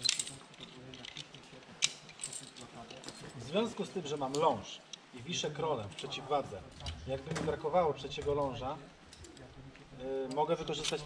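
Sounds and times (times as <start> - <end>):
metal carabiners clinking: 0.0 - 3.5, 10.3 - 11.0.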